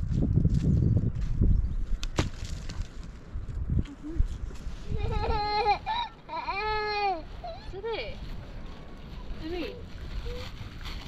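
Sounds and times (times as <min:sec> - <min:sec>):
young child crying: 0:04.8 - 0:07.7.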